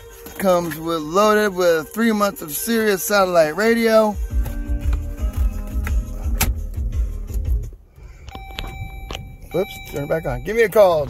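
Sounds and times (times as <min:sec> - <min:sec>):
bass-heavy music from car radio: 0:00.0 - 0:11.0
faint steady electronic tone: 0:08.3 - 0:11.0.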